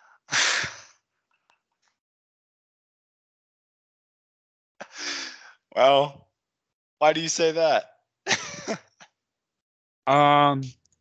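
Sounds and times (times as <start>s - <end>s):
man laughing breathily: 8.3s - 8.8s.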